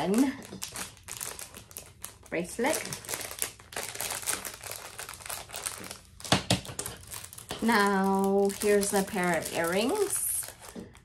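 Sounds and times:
plastic packaging crinkling: 0.0 - 11.0.

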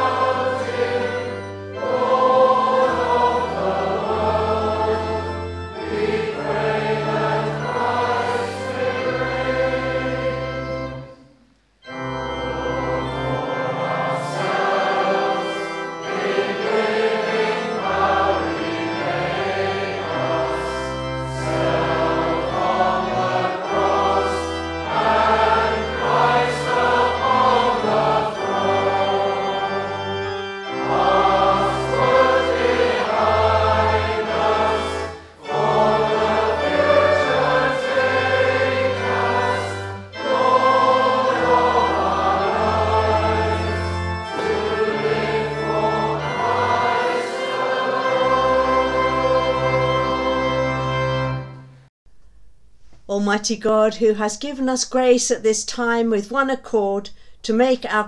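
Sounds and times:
choir singing a hymn: 0.0 - 51.7.

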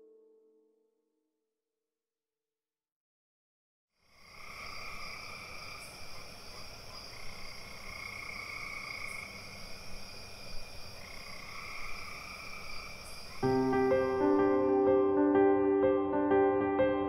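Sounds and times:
frogs and insects chorus: 4.0 - 14.8.

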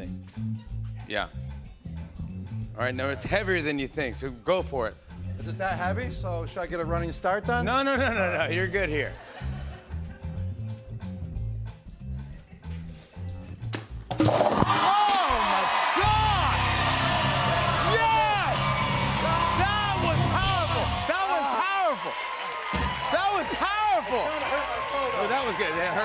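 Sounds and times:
crowd shouting and cheering: 14.3 - 26.0
band music: 15.9 - 21.8.

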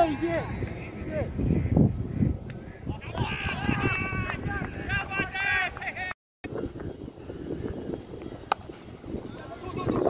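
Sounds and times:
wind buffeting microphone: 0.0 - 10.0
players shouting: 2.9 - 6.1.

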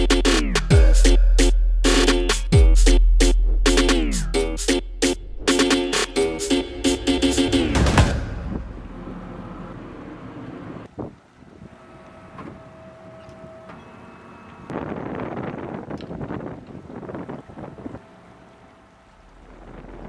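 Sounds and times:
wind and sea rushing: 14.6 - 20.0.

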